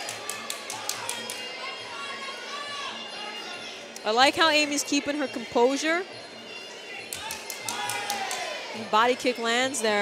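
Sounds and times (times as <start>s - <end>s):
crowd in a hall: 0.0s - 10.0s.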